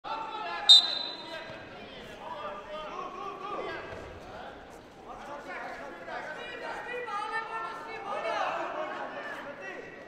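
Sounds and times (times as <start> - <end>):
voices in arena: 0.0 - 10.0
referee's whistle blast: 0.7 - 1.4.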